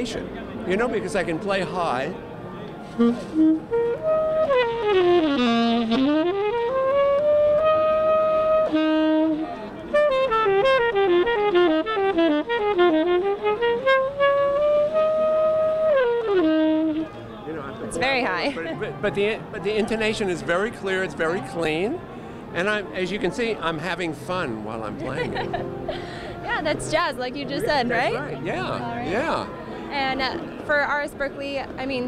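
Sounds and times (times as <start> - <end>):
tenor saxophone jazz solo: 2.8 - 17.2, 25.1 - 30.4.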